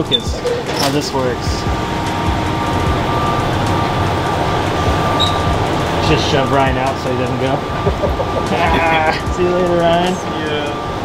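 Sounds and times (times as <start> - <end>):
train low rumble and hum: 0.2 - 11.0.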